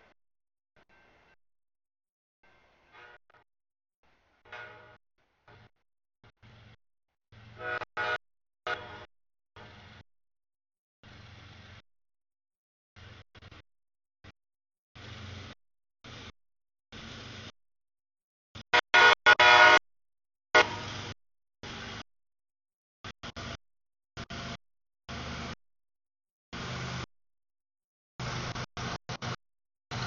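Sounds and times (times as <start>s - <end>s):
locomotive air horn blasts: 7.5s - 9.1s, 18.7s - 19.8s, 20.5s - 21.2s.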